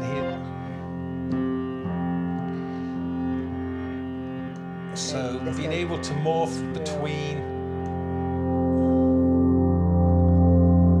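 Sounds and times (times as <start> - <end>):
sustained piano chord: 0.0 - 11.0.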